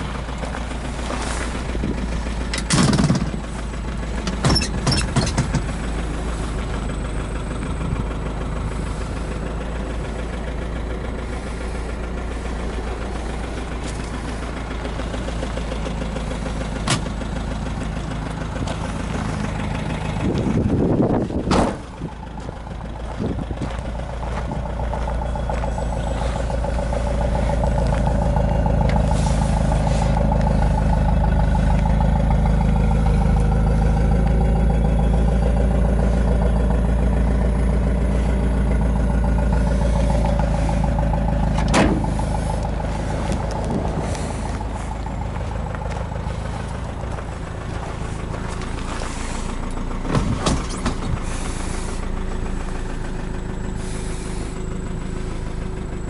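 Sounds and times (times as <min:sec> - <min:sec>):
car engine idling: 0:00.0 - 0:56.0
sharp clunks: 0:02.5 - 0:03.4, 0:04.2 - 0:05.8, 0:16.8 - 0:17.2, 0:21.5 - 0:21.9, 0:41.5 - 0:42.2, 0:50.1 - 0:51.2.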